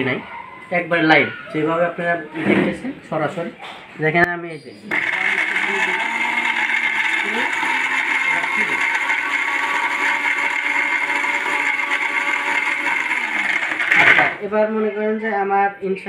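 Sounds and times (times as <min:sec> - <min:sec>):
mixer grinder running: 0:04.9 - 0:14.5.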